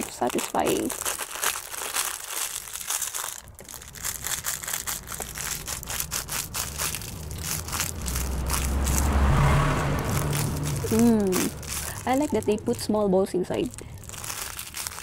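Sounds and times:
plastic bag crinkling: 0.0s - 15.0s
low rumble: 3.6s - 15.0s.

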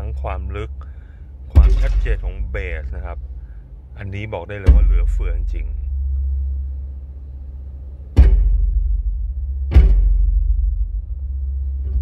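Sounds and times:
bass-heavy music in a car: 0.0s - 12.0s
big drum hits: 1.5s - 3.2s, 4.6s - 6.0s, 8.1s - 11.3s.

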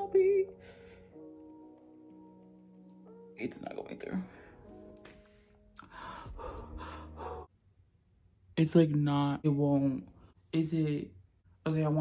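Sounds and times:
woman breathing hard: 4.4s - 7.5s.

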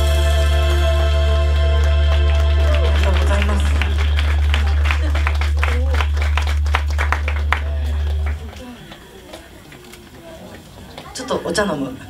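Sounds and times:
amplified low note ringing: 0.0s - 9.6s
audience clapping: 0.0s - 11.2s.

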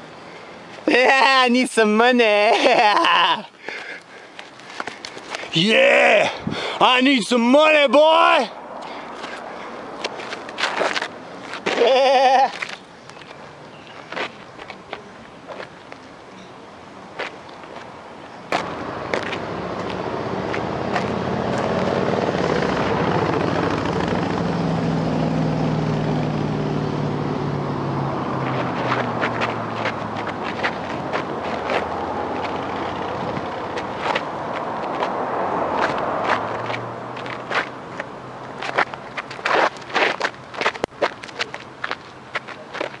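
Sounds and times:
wind on microphone: 6.3s - 6.7s, 30.0s - 36.3s
footsteps scuffing on gravel: 10.0s - 11.8s, 28.5s - 32.6s, 35.8s - 43.0s.

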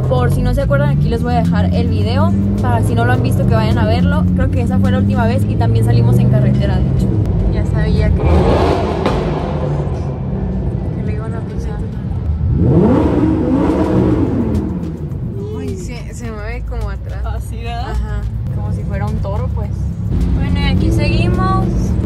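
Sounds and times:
car engine revving: 0.0s - 22.0s
engine and road drone: 0.0s - 22.0s.

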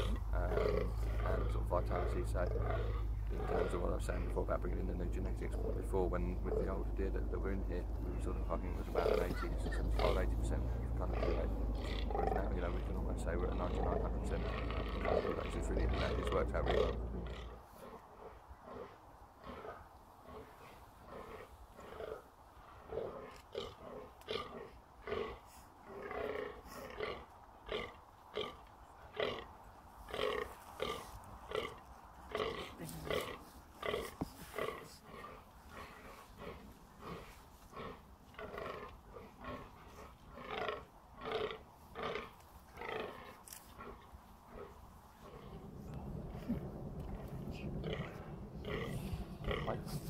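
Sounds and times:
deer grunting: 0.0s - 50.0s.

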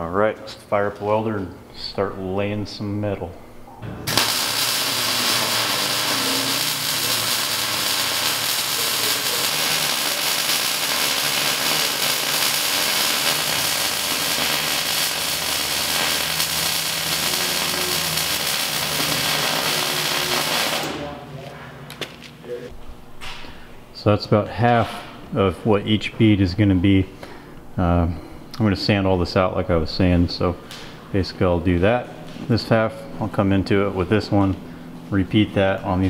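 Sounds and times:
welder arc crackling: 4.0s - 21.2s.

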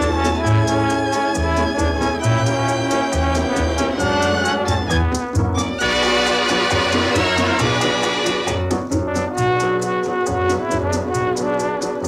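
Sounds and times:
bass line: 0.0s - 9.8s
steady percussion beat: 0.0s - 11.6s
brass section chords: 0.0s - 11.9s.

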